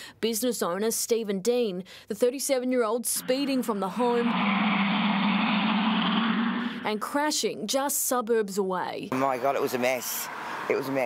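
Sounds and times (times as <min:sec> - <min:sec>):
car engine running: 0:03.2 - 0:07.2
road noise: 0:03.2 - 0:07.3, 0:09.1 - 0:11.0.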